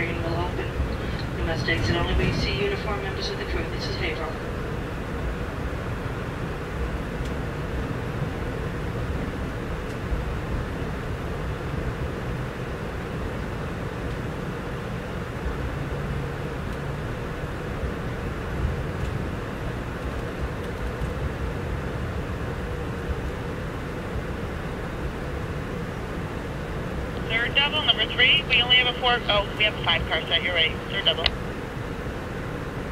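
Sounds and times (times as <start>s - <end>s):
train wheels rumbling on rails: 0.0s - 4.4s
faint steady hum: 0.0s - 32.9s.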